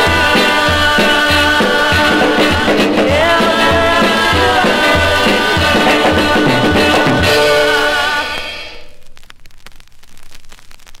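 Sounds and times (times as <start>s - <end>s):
light hiss: 8.0s - 11.0s
record surface clicks and crackle: 8.3s - 11.0s.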